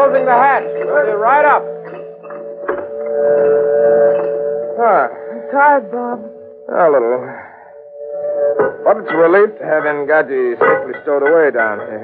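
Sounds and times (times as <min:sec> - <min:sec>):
steady two-note drone: 0:00.0 - 0:10.9.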